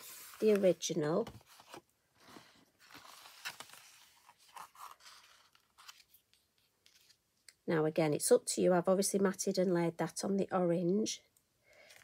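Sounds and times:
card stock scraping and rustling: 0:00.0 - 0:07.2.

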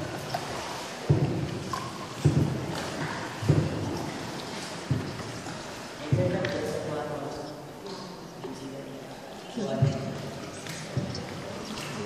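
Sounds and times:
paddle strokes in water: 0:00.0 - 0:12.0.

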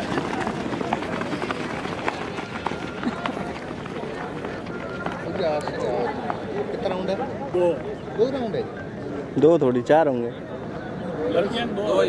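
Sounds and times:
runners' footsteps on dirt: 0:00.0 - 0:08.1
people talking: 0:00.0 - 0:12.0.

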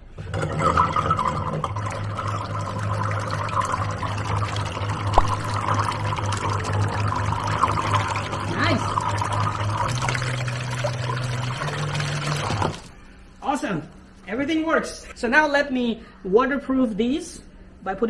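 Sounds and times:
propeller churning water: 0:00.3 - 0:13.0.

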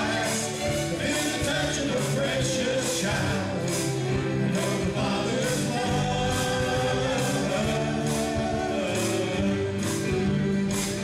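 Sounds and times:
voices singing together: 0:00.0 - 0:10.2
country gospel band playing: 0:00.0 - 0:11.0.

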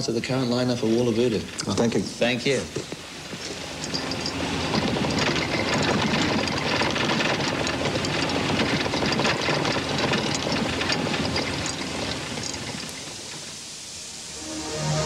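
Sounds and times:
vehicle rattling: 0:02.6 - 0:13.6.

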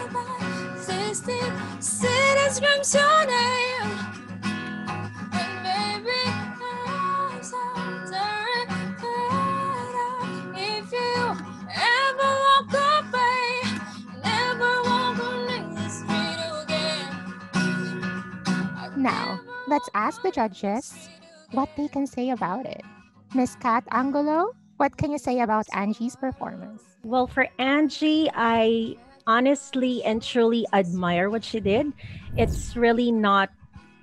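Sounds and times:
woman singing: 0:00.0 - 0:04.1, 0:05.3 - 0:18.0, 0:18.8 - 0:22.4
acoustic guitar: 0:00.0 - 0:34.0.

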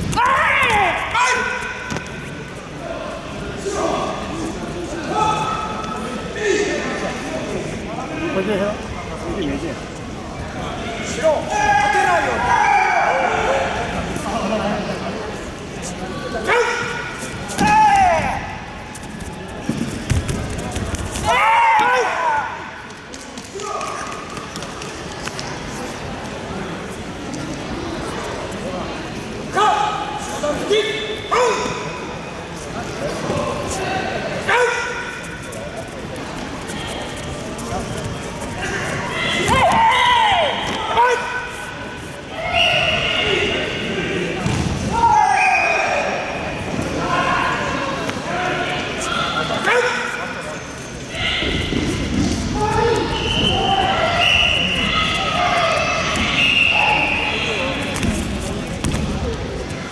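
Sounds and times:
people yelling in echoing hall: 0:00.0 - 0:02.1, 0:02.7 - 0:07.2, 0:10.7 - 0:14.0, 0:16.2 - 0:18.8, 0:21.2 - 0:22.9, 0:29.4 - 0:32.2, 0:33.4 - 0:35.4, 0:38.5 - 0:57.9
people shouting: 0:21.2 - 0:22.7, 0:38.6 - 0:41.6.

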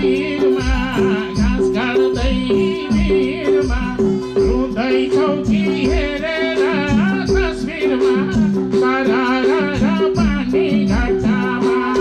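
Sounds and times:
low drum beat: 0:00.0 - 0:12.0
person singing ornamented folk song: 0:00.0 - 0:12.0.

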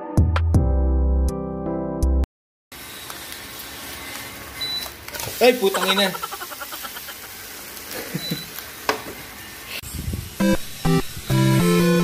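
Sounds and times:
omelette sizzling in a pan: 0:02.8 - 0:09.8.

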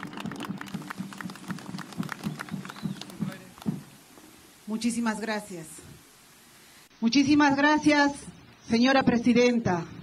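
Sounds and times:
group of people applauding: 0:00.0 - 0:03.8.

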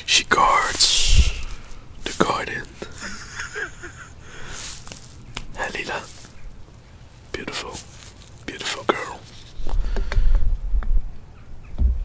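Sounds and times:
man whispering: 0:00.0 - 0:03.1, 0:05.5 - 0:06.2, 0:07.2 - 0:09.6.

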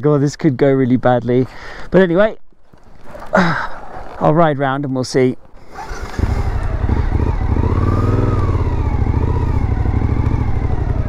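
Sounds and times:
motorcycle engine running: 0:05.7 - 0:11.0.

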